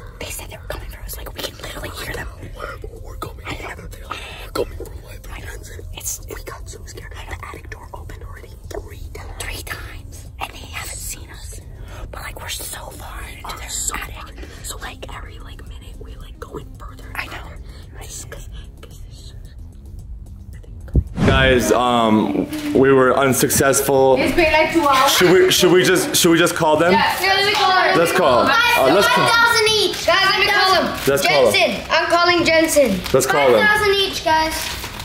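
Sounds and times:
people whispering: 0.0 - 31.7
steady low rumble: 15.0 - 22.2.

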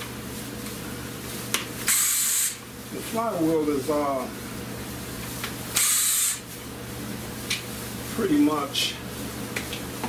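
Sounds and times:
air tool hissing: 1.8 - 2.6, 5.7 - 6.5.

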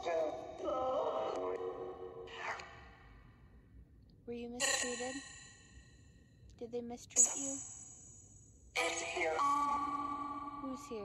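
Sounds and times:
echoing voice-like fragments: 4.6 - 5.2, 7.1 - 7.6, 8.8 - 11.0.

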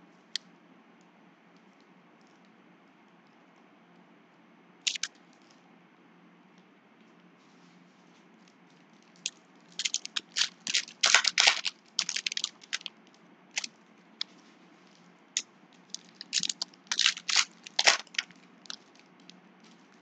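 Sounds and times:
foil wrapper crinkling: 4.9 - 5.1, 8.7 - 15.1, 15.8 - 20.0.

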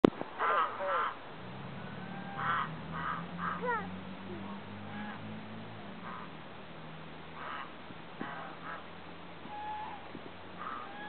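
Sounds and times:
geese honking: 0.4 - 6.4, 7.2 - 11.0.

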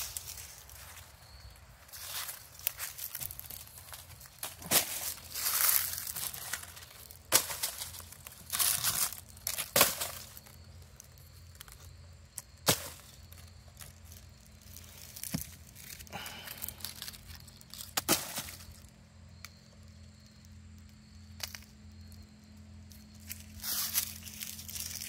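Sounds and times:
footsteps on dry leaves: 0.0 - 11.9, 12.6 - 18.9, 22.9 - 25.0
sharp cracks and knocks: 4.4 - 10.6, 15.2 - 16.0, 16.9 - 18.8.

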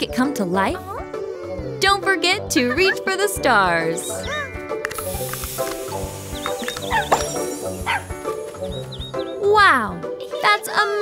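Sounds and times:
background music: 0.0 - 11.0
smoke puff hiss: 4.9 - 8.9.

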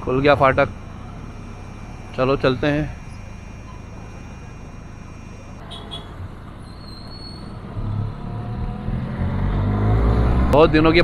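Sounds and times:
road traffic engines: 0.0 - 11.0
loud engine pulling away: 7.7 - 10.8.

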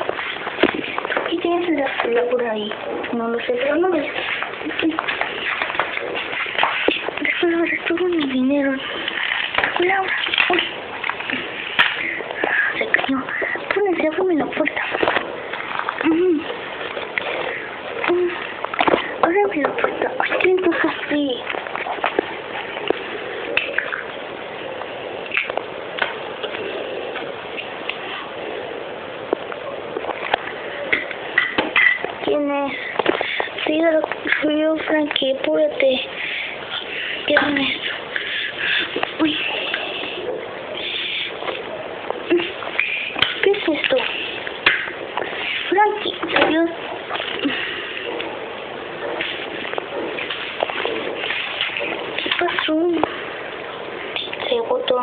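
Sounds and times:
indistinct talking: 0.0 - 25.6, 29.5 - 55.0
background hiss: 0.0 - 55.0.

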